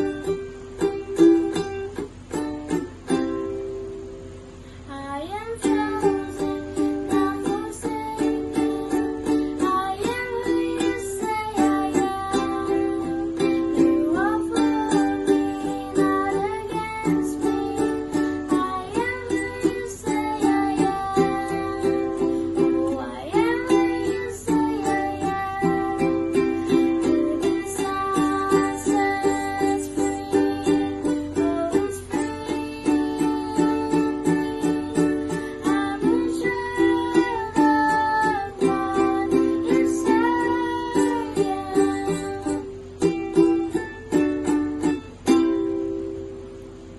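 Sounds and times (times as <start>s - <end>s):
ukulele strumming: 0.0s - 46.9s
child singing: 4.9s - 45.4s.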